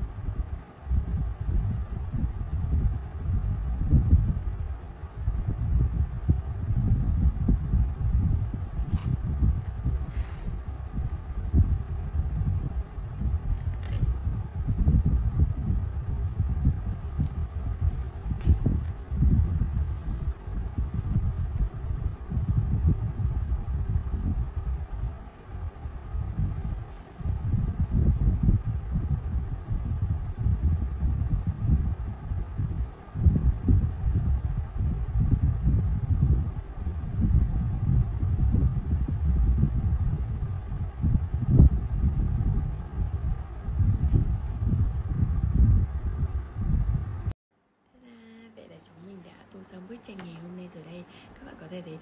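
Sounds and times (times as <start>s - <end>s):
low uneven rumble: 0.0s - 47.4s.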